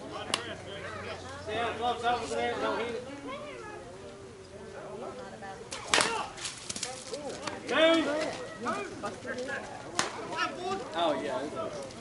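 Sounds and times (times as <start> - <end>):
bat hitting ball: 5.8 - 6.4.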